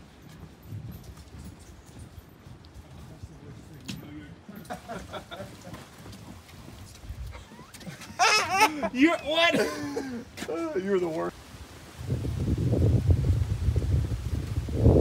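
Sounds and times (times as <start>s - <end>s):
footsteps on wooden boardwalk: 0.0s - 11.4s
person laughing: 4.5s - 5.8s, 7.3s - 10.8s
wind rumbling on microphone: 6.4s - 8.2s, 11.3s - 15.0s.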